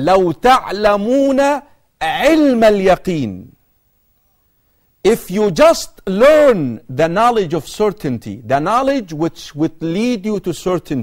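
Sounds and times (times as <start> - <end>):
man lecturing: 0.0 - 3.6, 5.0 - 11.0.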